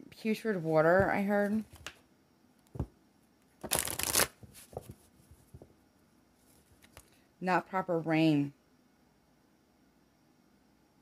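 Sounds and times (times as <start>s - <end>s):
cards being shuffled: 3.6s - 5.0s, 6.4s - 7.1s.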